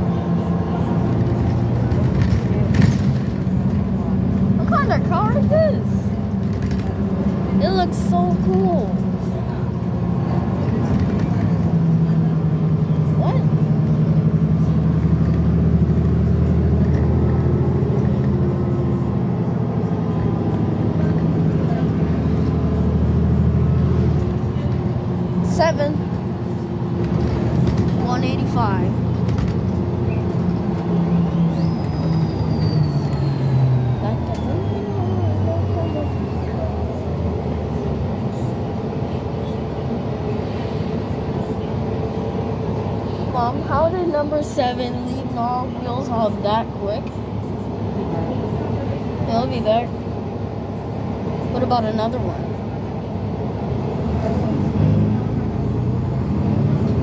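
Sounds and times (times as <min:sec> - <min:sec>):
bus engine drone: 0:00.0 - 0:57.0.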